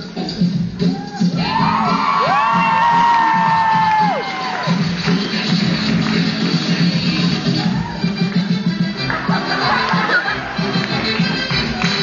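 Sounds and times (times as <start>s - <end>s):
music with a steady beat: 0.0s - 12.0s
crowd whooping and cheering: 0.8s - 6.0s, 7.3s - 8.4s, 9.1s - 11.9s.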